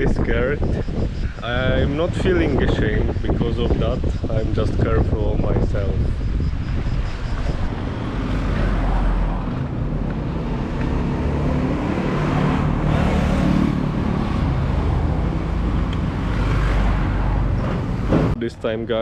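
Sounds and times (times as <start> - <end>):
road traffic noise: 0.0 - 19.0.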